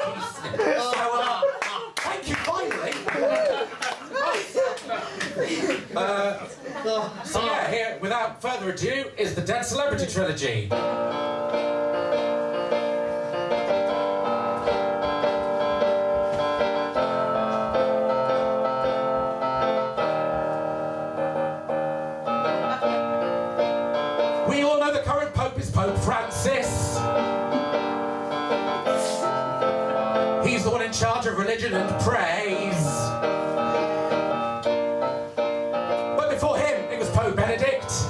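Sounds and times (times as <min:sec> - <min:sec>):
electronic keyboard piano chords: 0:10.7 - 0:38.0.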